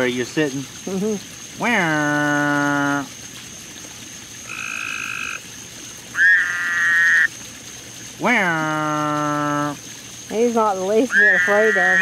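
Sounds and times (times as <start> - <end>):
frog calling: 0.0 - 3.2, 4.3 - 7.4, 8.0 - 12.0.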